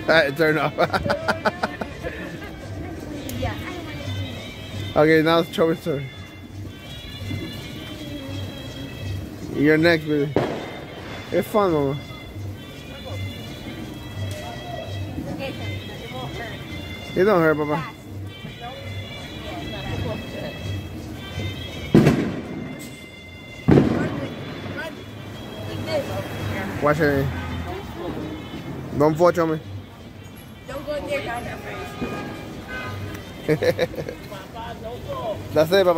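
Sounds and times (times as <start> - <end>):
music with a steady beat: 6.0 - 26.1
firecracker bangs: 10.3 - 11.3, 21.9 - 23.0, 23.6 - 24.8.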